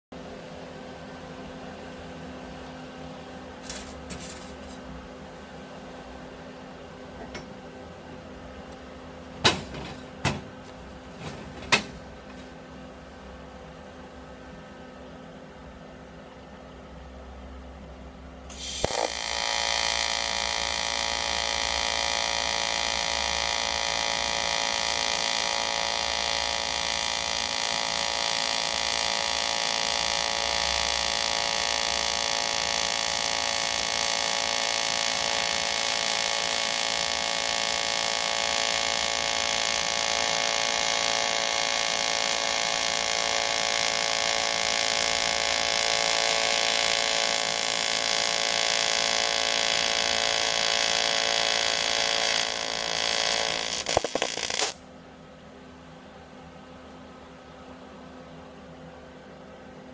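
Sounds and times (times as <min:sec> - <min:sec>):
welding arc buzzing: 0:03.6 - 0:04.8, 0:18.5 - 0:54.8.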